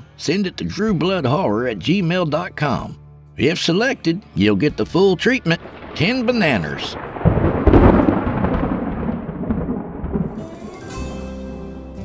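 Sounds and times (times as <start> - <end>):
deep rumbling boom: 5.5 - 10.8.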